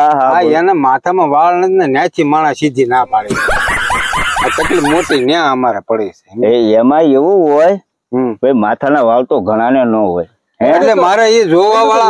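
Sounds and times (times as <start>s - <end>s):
high-pitched snickering laughter: 3.3s - 5.2s.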